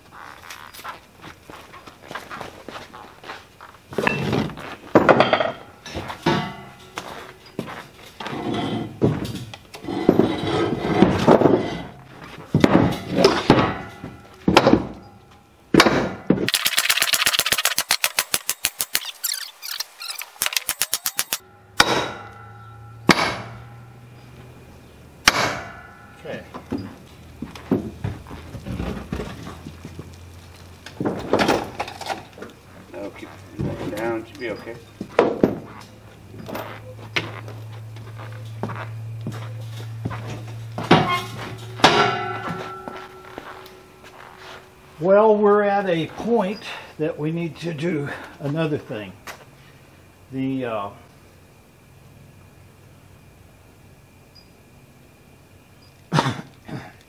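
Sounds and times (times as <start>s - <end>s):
metal bars clanking on wood: 4.0s - 16.6s, 17.8s - 24.5s, 25.2s - 29.7s, 30.9s - 32.4s, 39.6s - 44.6s
rapid clicks: 16.5s - 19.2s.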